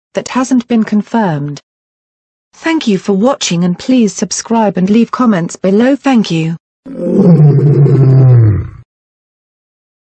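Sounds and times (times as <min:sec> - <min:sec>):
lion roaring: 0:06.9 - 0:08.8.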